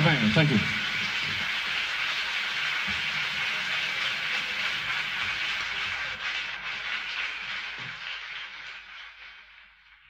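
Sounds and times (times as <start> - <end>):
steady hiss: 0.0 - 10.0.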